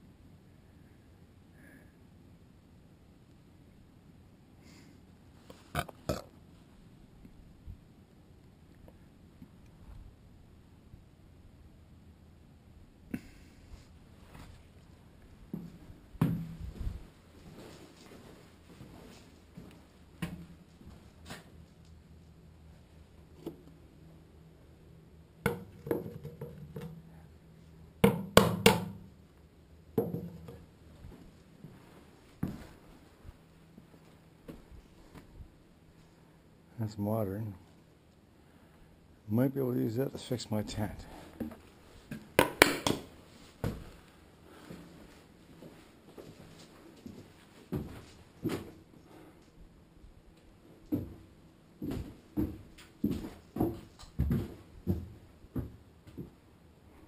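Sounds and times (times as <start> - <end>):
sharp knocks on hard surface: 28.0 - 29.0
footsteps on a hard floor: 51.8 - 56.3.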